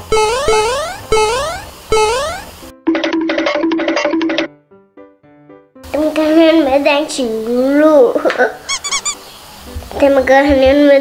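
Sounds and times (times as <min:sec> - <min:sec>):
rising electronic glides: 0:00.0 - 0:02.6
bright musical jingle: 0:00.1 - 0:02.6.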